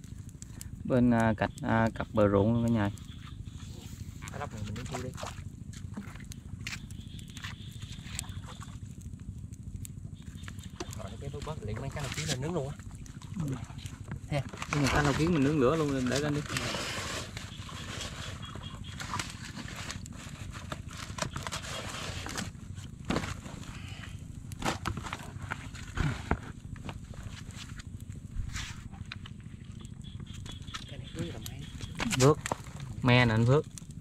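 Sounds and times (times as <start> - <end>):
light knocks and rustles of leaves: 2.7 - 9.2, 10.4 - 33.8.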